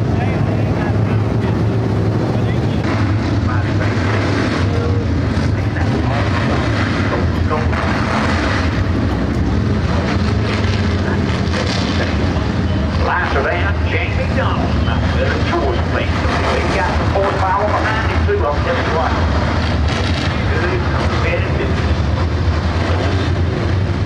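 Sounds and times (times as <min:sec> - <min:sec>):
race car engines droning: 0:00.0 - 0:24.0.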